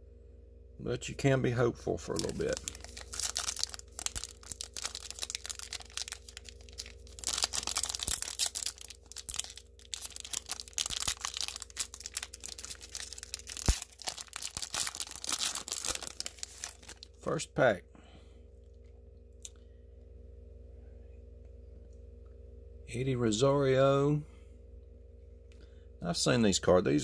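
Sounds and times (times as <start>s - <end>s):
foil wrapper tearing and crinkling: 2.0s - 17.3s.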